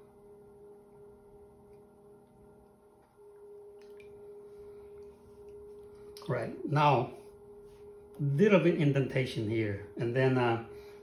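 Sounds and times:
potter's wheel humming: 0.0 - 11.0.

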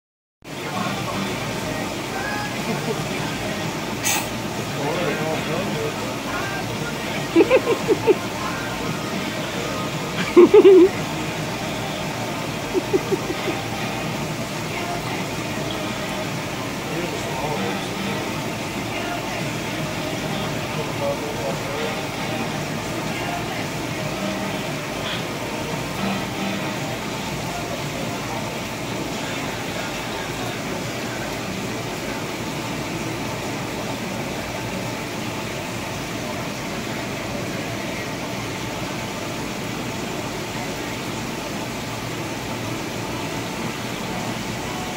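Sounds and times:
murmur of voices: 0.5 - 42.0
aquarium air pump hum: 0.5 - 44.9
filters bubbling: 0.5 - 44.9.

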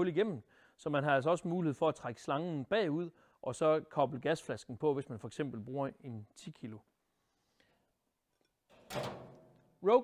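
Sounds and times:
metal cabinet doors banging shut: 8.7 - 9.6.

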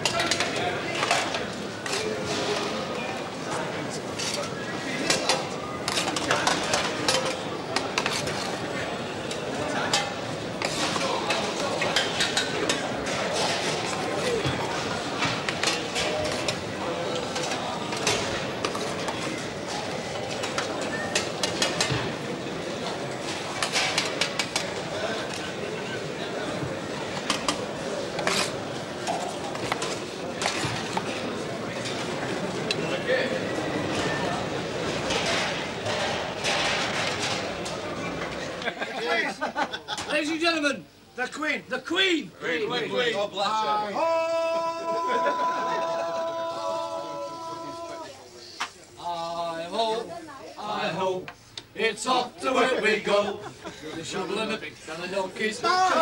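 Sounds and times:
metal spoons clattering on trays: 0.0 - 2.8, 4.1 - 22.1, 23.2 - 25.6, 27.2 - 32.0, 33.9 - 38.5
hubbub of voices: 0.0 - 56.0.

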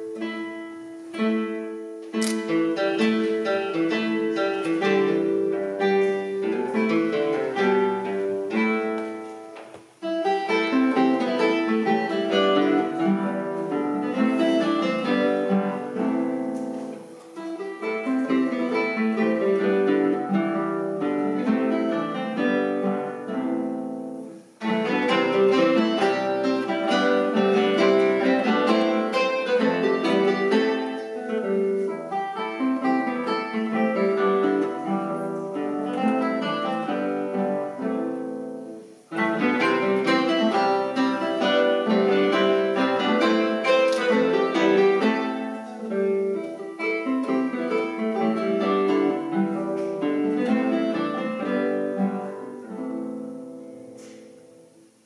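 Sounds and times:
classical guitars playing: 0.0 - 55.0.

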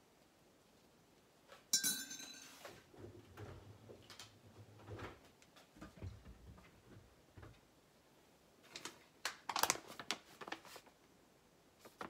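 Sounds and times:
teaspoon clinking against mug: 1.8 - 2.6.

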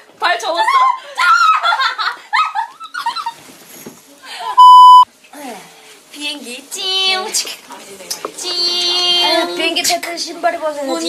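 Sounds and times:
electronic beep: 4.6 - 5.0.

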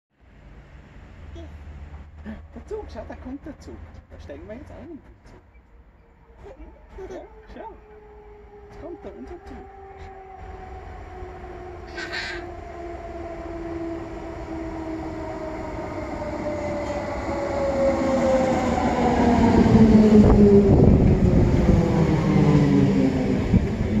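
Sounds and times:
wheel and rail rumble: 0.2 - 24.0
electric train whine: 5.5 - 24.0.

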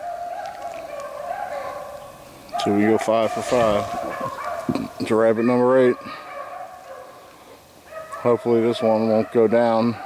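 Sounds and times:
pack of dogs baying: 0.0 - 10.0.

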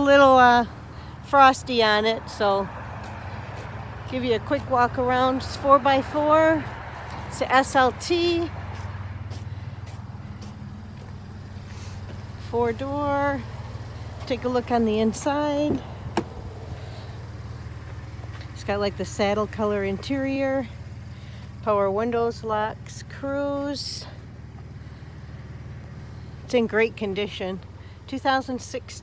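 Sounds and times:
pickup engine idling: 8.2 - 29.0.

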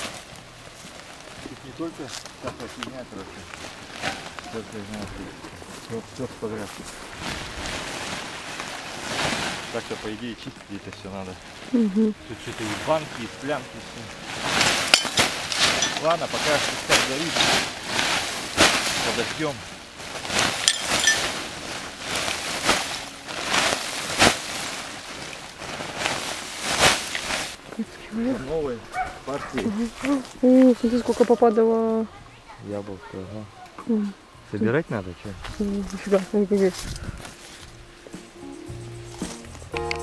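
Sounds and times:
dry debris pouring onto ground: 0.0 - 27.6
plastic sack rustling: 0.0 - 32.0, 35.3 - 37.9
rubbish tipped onto ash: 14.3 - 19.5, 20.2 - 21.5.

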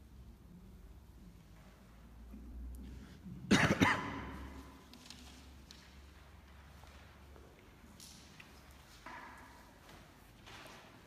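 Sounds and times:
person coughing with echo: 3.4 - 4.8.

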